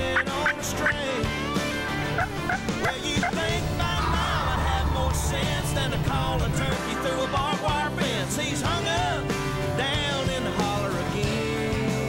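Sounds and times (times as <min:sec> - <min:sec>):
song backing music: 0:00.0 - 0:12.0
wild turkey gobbling: 0:02.0 - 0:06.7.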